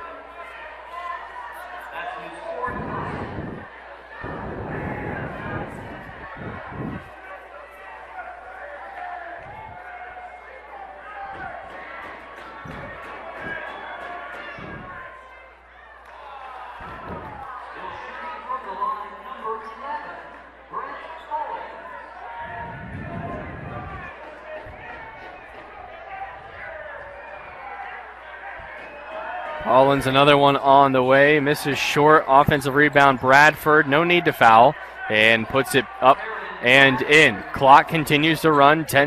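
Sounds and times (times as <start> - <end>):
murmur of crowd voices: 0.0 - 39.0.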